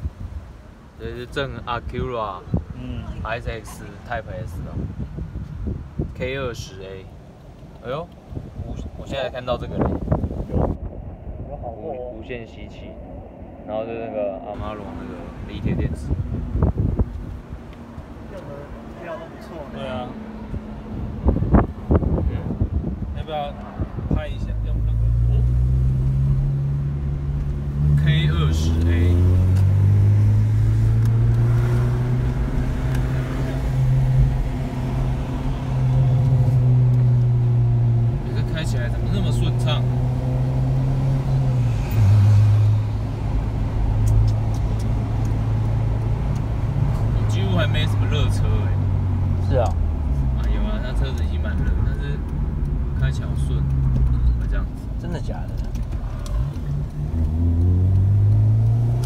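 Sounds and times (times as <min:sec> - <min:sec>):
car engine revving while driving: 0:14.6 - 0:59.0.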